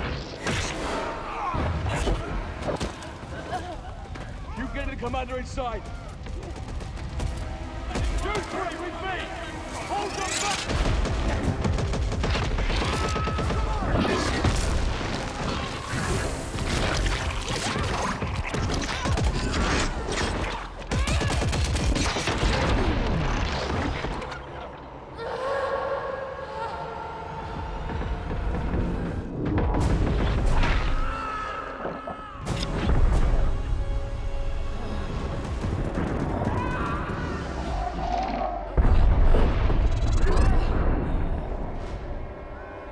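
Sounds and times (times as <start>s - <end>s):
dramatic music score: 0.0s - 42.9s.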